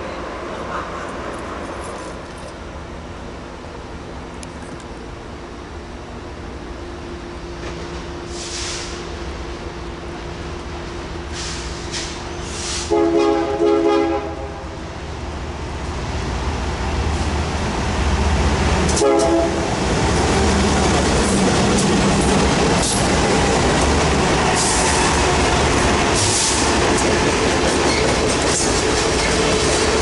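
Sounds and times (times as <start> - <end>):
locomotive air horn blasts: 12.6 - 14.7, 18.9 - 19.7.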